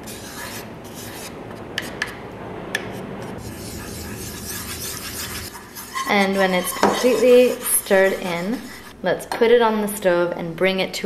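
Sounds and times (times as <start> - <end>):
wooden spatula scraping a pot: 3.4 - 9.0.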